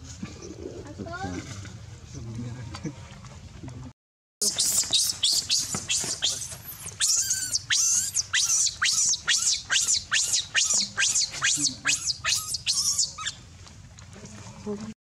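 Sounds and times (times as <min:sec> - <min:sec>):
baby monkey screaming: 0:04.4 - 0:13.4.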